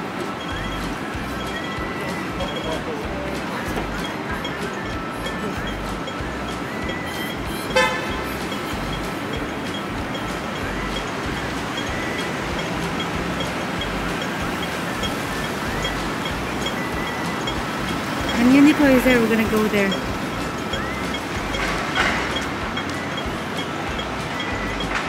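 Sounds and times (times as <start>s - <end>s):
pedestrian crossing signal pips: 0.0s - 25.0s
street traffic: 0.0s - 25.0s
car horn toot: 3.7s - 25.0s.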